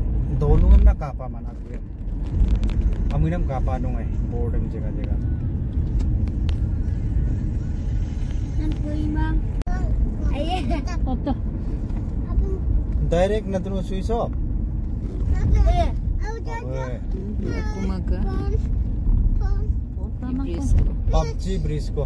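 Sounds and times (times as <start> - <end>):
car engine and tyres rumbling: 0.0 - 22.0
people talking: 16.6 - 18.6, 20.0 - 22.0.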